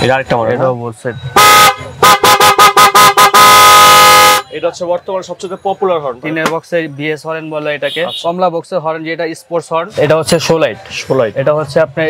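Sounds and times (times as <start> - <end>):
motorcycle horn blasts: 1.4 - 4.5.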